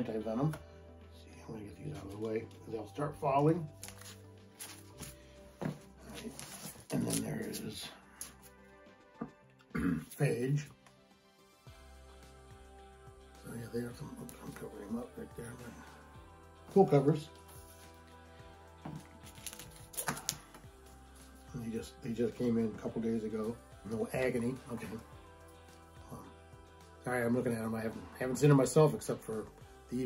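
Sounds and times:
soft background music: 0.0s - 30.0s
taps and rustles of bagged comics: 3.8s - 8.3s, 18.8s - 20.7s.

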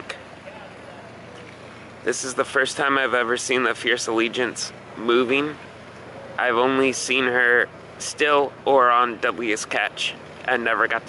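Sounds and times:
faint outdoor hum: 0.0s - 11.0s.

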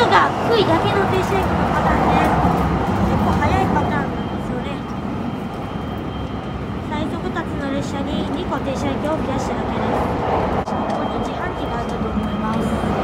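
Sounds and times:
indistinct voices: 0.0s - 5.1s, 6.8s - 13.0s
train running low rumble: 0.0s - 13.0s.

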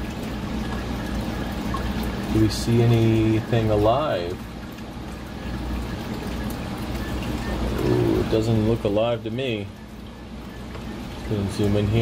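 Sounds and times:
low pump hum: 0.0s - 12.0s
water trickling: 0.0s - 12.0s.

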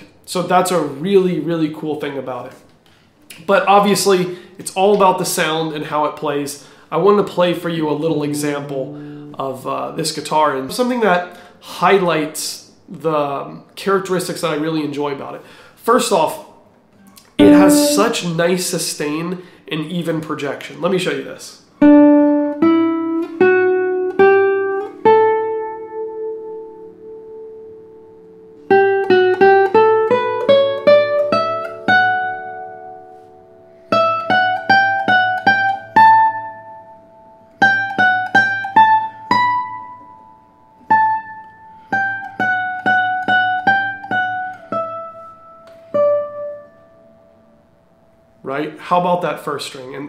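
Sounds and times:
classical guitar fingerpicked: 7.9s - 9.7s, 17.0s - 18.2s, 21.8s - 47.5s.

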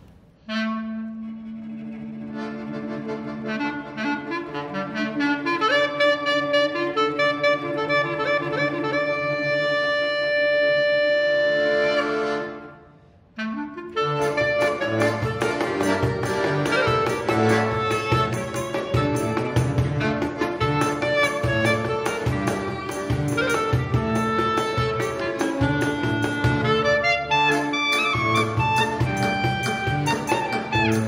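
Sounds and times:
clarinet melody: 0.4s - 31.0s
band playing fast dance music: 14.2s - 26.9s, 27.5s - 31.0s.

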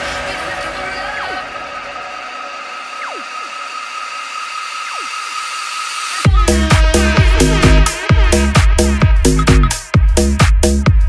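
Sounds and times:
falling pitch sweeps: 1.2s - 8.0s
sustained high synth tones: 1.7s - 8.1s.

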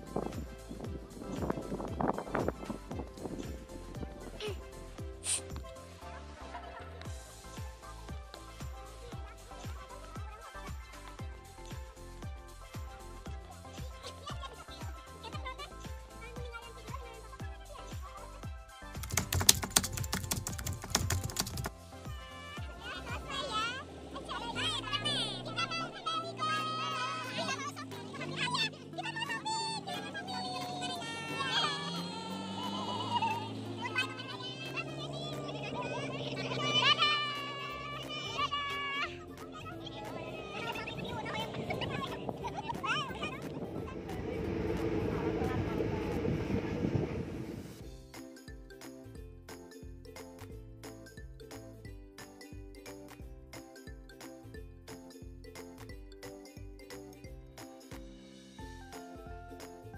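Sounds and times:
background music: 0.0s - 59.9s
truck engine and road noise: 0.0s - 59.9s
keyboard typing clicks: 19.0s - 21.7s
high voices calling out: 22.2s - 44.6s.

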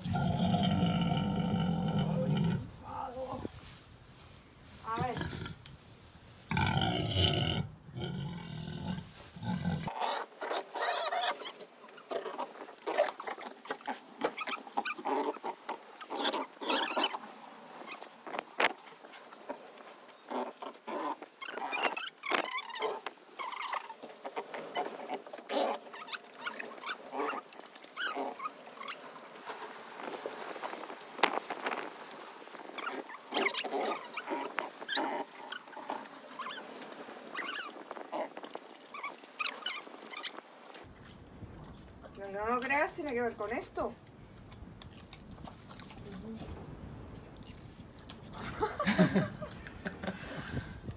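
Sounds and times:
pig smacking and chewing: 9.8s - 42.7s, 44.0s - 48.5s.

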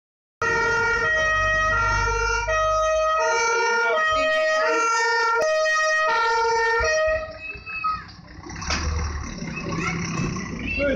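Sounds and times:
two-tone siren horn: 0.4s - 7.4s
truck engine driving past: 0.4s - 10.9s.

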